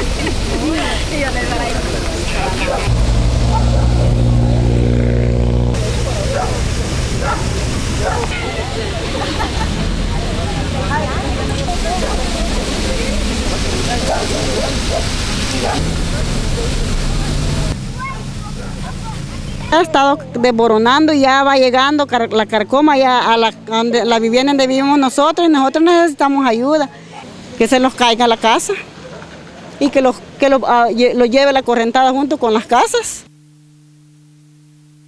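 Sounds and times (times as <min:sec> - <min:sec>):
steady rushing noise: 0:00.0 - 0:21.1
car driving past on wet road: 0:02.1 - 0:20.3
people talking indistinctly: 0:08.0 - 0:33.3.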